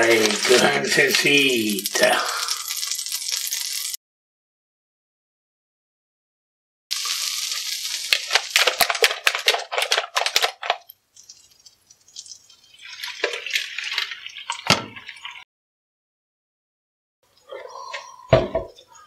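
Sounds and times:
butter sizzling in frying pan: 0.0 - 4.0, 6.9 - 15.4
egg hissing in pan: 0.0 - 4.0, 6.9 - 15.4.

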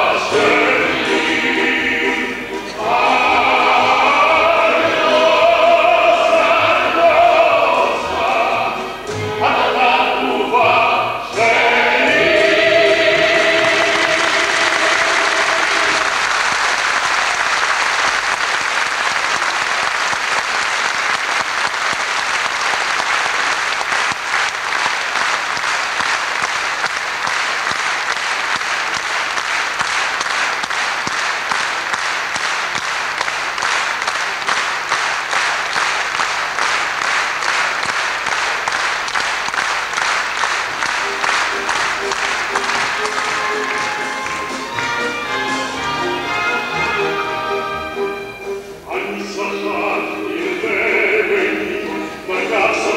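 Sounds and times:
choir final chord: 0.0 - 16.3
rhythmic clapping in unison: 0.0 - 48.6
audience applauding: 11.4 - 46.8.

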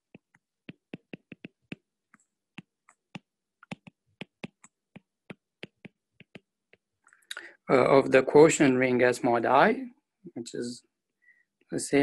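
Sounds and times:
stylus tapping on glass screen: 0.0 - 6.9.

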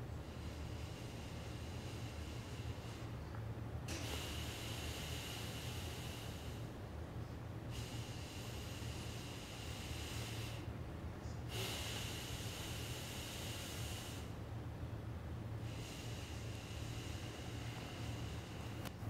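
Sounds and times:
soft breathing: 0.0 - 14.6, 15.2 - 19.0
steady low hum: 0.0 - 19.0.

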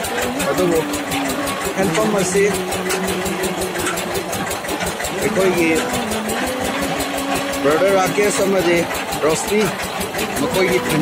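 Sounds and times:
drilling rig engine running: 0.0 - 11.0.

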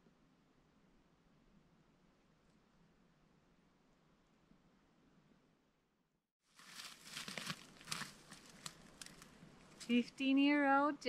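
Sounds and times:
crackling and rustling: 6.5 - 9.9.

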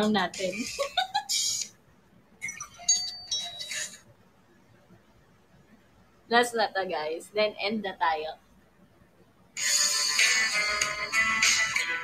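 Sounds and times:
steady high tones: 2.4 - 4.0
snatches of music: 9.6 - 12.0.

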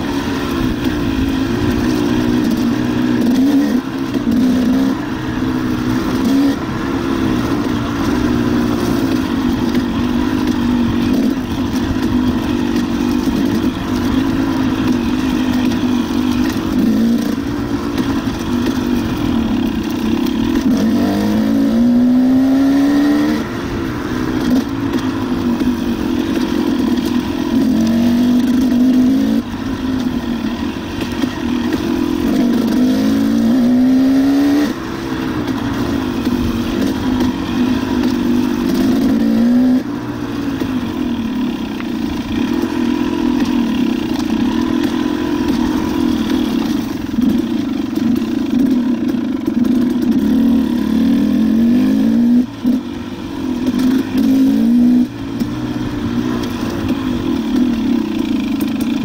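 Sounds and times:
dirt bike engine revving: 0.0 - 59.0.

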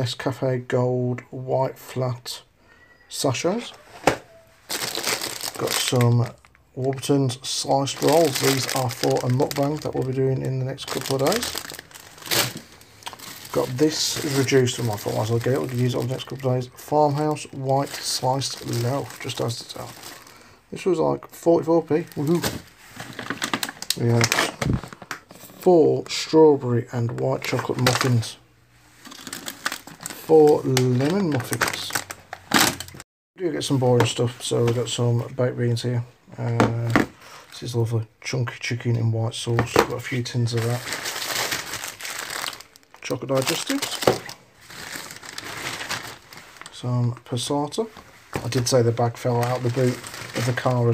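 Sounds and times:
plastic packaging crackling: 3.5 - 25.5, 27.1 - 28.4, 29.0 - 33.0, 39.7 - 50.9.

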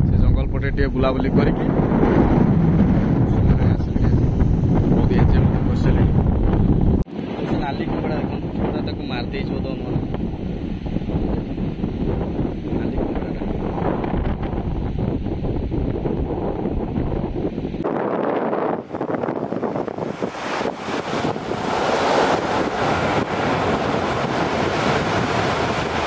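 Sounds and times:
wind buffeting microphone: 0.0 - 26.0
sea surf washing in: 7.0 - 8.8, 9.8 - 26.0.

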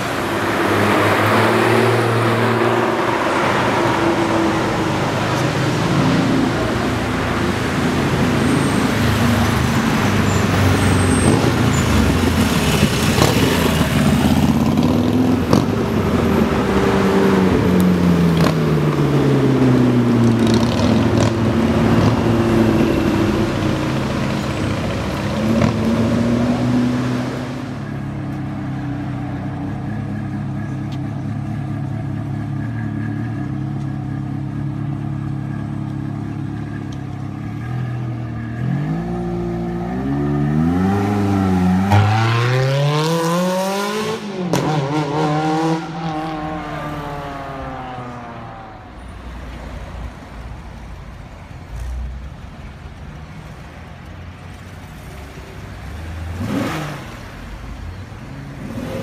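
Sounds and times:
sports car engine revving: 56.3 - 57.3.

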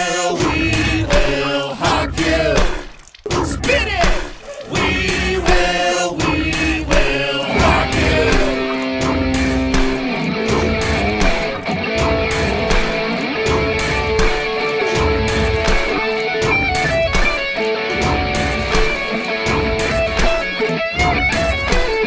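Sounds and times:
steady drum beat: 0.0 - 22.0
distorted electric guitar: 6.2 - 22.0.

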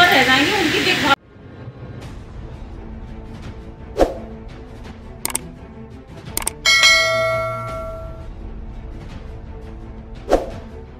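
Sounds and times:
soft background music: 0.1 - 10.9
double mouse click: 6.4 - 6.6
bell ding: 6.4 - 8.2.

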